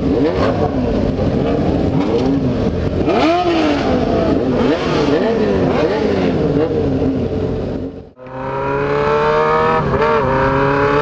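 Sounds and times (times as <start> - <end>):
motorcycle engines revving: 0.0 - 11.0
wind: 0.0 - 11.0.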